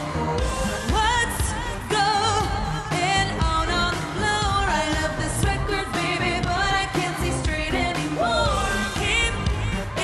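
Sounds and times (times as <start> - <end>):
woman singing: 0.7 - 10.0.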